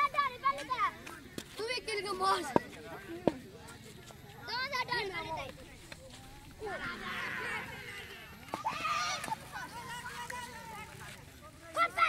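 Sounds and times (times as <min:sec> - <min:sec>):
children shouting: 0:06.6 - 0:10.9.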